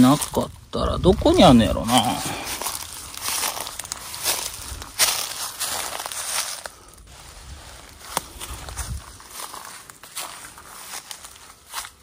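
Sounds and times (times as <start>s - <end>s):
footsteps crunching through dry leaves: 0.0s - 12.0s.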